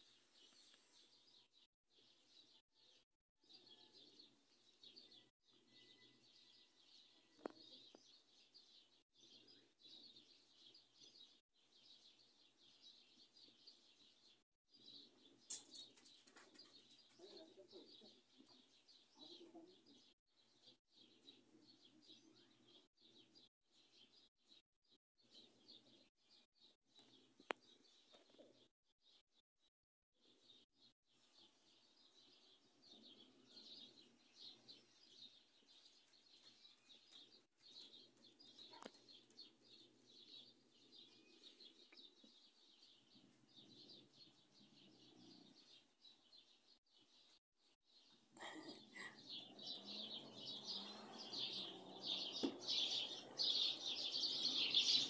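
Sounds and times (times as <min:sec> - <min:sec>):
small birds chirping: 0:00.0 - 0:55.0.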